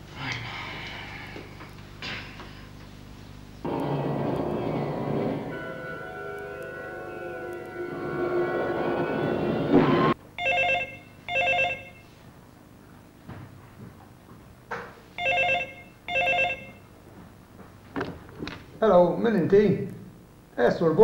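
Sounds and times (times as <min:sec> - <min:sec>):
western film music on television: 0:03.7 - 0:10.1
telephone ringing: 0:10.4 - 0:12.1, 0:15.2 - 0:16.9.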